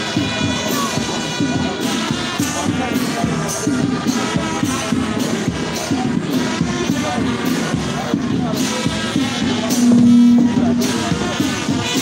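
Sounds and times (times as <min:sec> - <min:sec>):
crowd noise: 0:00.0 - 0:12.0
marching band music: 0:00.0 - 0:12.0.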